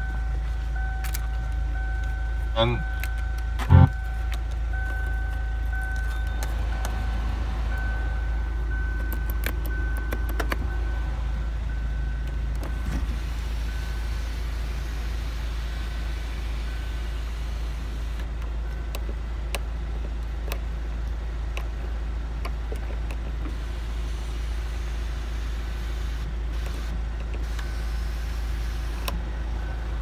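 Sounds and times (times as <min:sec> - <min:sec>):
diesel engine idling: 0:00.0 - 0:30.0.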